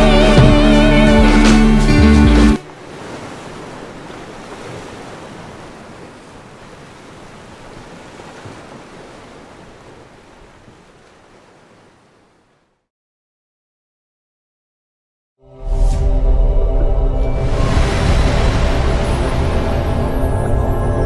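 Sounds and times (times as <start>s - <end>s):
sea waves: 0.0s - 12.8s, 17.2s - 21.0s.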